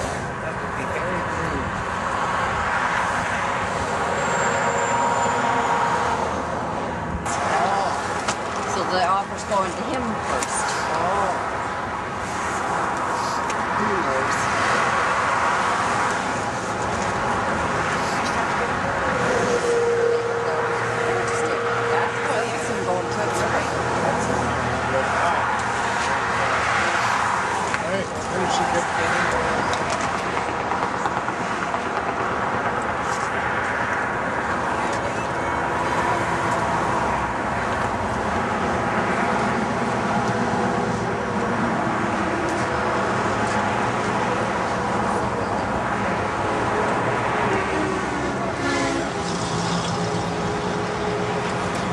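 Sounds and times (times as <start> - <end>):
road traffic noise: 0.0 - 51.9
voices: 7.3 - 32.9.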